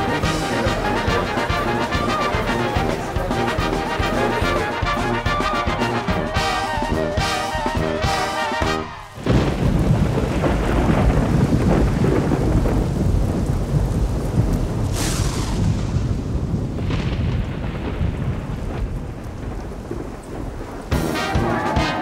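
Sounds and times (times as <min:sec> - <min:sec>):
heavy rain pouring: 0:00.0 - 0:22.0
sharp thunderclap: 0:00.0 - 0:22.0
thunder rumbling: 0:00.0 - 0:22.0.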